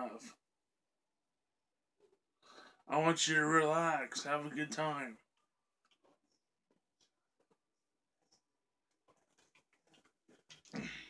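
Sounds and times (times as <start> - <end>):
man gulping and swallowing: 9.1 - 11.0
rough breath out: 10.7 - 11.0.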